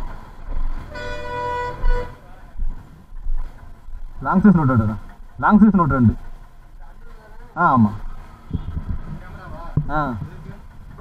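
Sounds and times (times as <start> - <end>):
low street traffic rumble: 0.0 - 11.0
vehicle horn: 0.5 - 2.2, 8.4 - 8.9.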